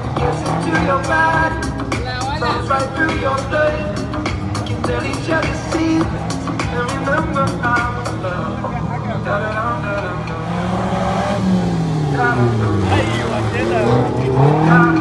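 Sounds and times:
car engine revving: 0.0s - 15.0s.

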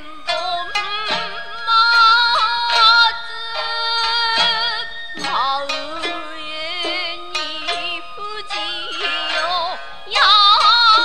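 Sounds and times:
song with wavering singing voice: 0.0s - 11.0s.

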